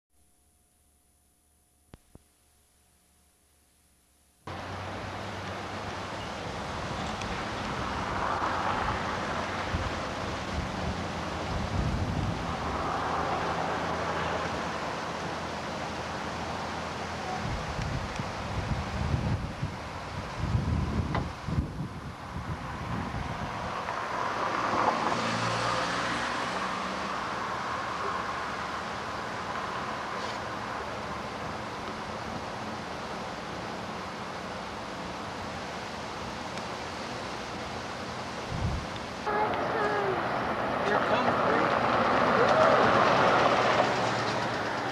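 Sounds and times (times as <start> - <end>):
road traffic: 4.4 - 44.9
vehicles passing: 4.5 - 44.9
wind buffeting microphone: 6.5 - 12.8, 17.3 - 23.9, 38.4 - 44.9.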